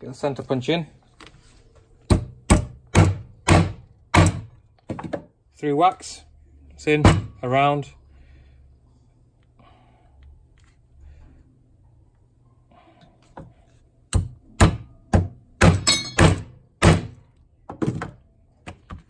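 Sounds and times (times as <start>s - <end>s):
hammer striking metal punch: 2.1s - 4.5s, 7.0s - 7.4s, 14.1s - 17.2s.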